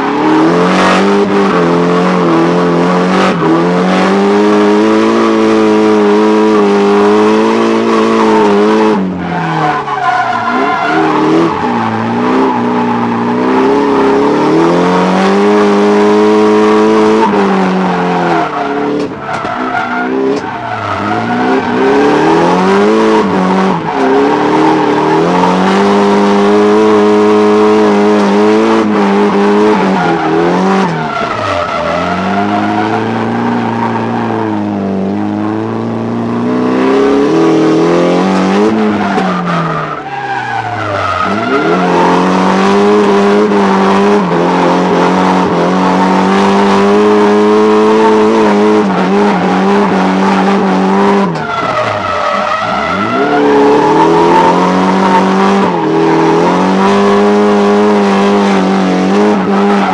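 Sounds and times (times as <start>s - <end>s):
car engine at high revs: 0.0s - 59.9s
tyre squeal: 37.2s - 59.9s.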